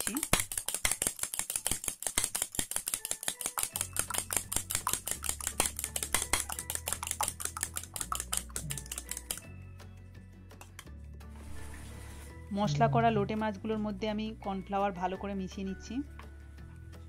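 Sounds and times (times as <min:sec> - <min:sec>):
fork beating eggs in bowl: 0:00.0 - 0:09.5
background music with low notes: 0:03.0 - 0:17.0.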